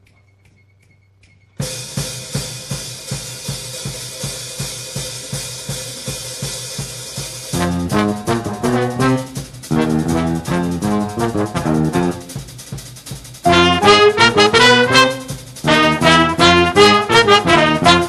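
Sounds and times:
drum kit groove with cymbals: 1.6s - 18.0s
bass and horns riff: 7.1s - 18.0s.

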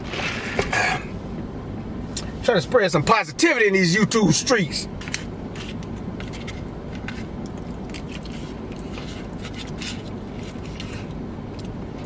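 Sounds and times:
low hum in car cabin: 0.0s - 12.0s
plastic spoon scraping foam cup: 5.0s - 11.2s.

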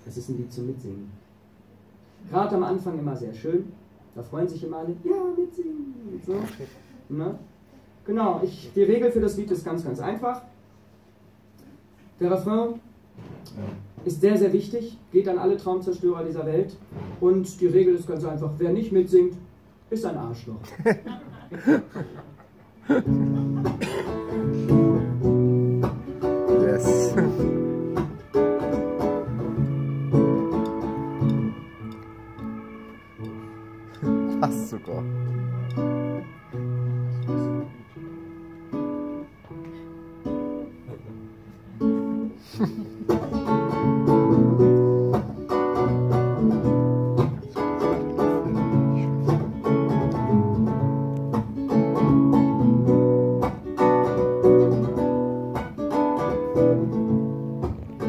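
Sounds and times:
acoustic guitar playing: 21.0s - 58.0s.

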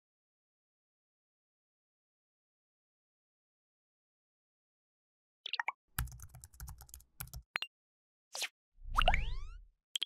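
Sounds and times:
keyboard typing clicks: 6.0s - 7.4s.

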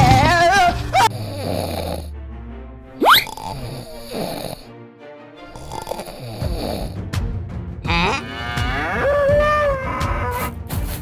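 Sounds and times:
background music: 0.0s - 11.0s
snoring sound effect: 1.0s - 2.1s, 3.0s - 4.7s, 5.5s - 7.0s
cow-like moo: 7.9s - 9.2s.

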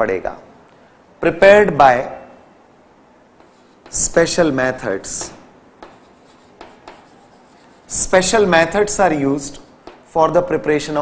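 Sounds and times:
chalk scratching on blackboard: 3.4s - 10.1s
chalk tapping on blackboard: 3.4s - 10.2s.

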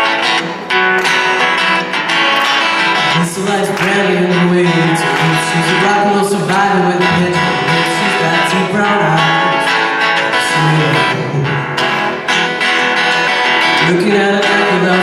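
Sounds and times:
live band playing a song: 0.0s - 15.0s.

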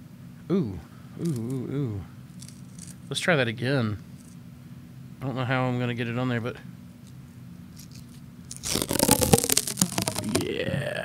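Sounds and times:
tape peeling off crackling: 8.1s - 10.6s.

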